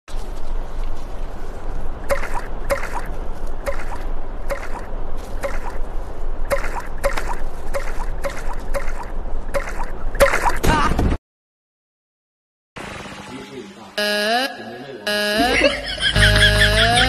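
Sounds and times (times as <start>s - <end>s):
wind: 0.1s - 11.2s, 12.8s - 17.0s
water: 12.8s - 14.0s.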